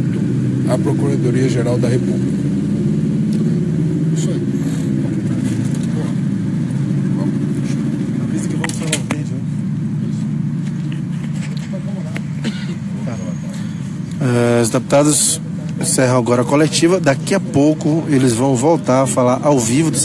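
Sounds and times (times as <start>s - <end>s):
crowd of reporters talking: 0.0s - 20.0s
low background hum: 0.0s - 20.0s.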